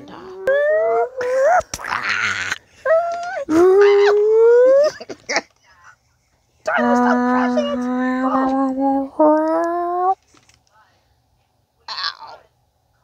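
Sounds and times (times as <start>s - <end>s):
person wailing howls: 0.0s - 1.7s, 2.8s - 5.0s, 6.7s - 10.2s.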